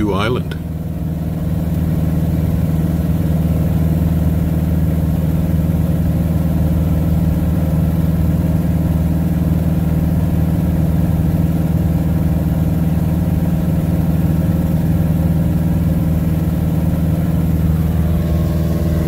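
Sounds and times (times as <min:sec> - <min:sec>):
propeller plane engine droning: 0:00.0 - 0:19.0.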